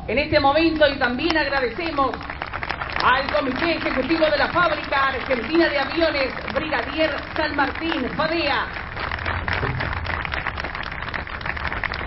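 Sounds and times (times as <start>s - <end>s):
crowd applauding: 1.2s - 12.0s.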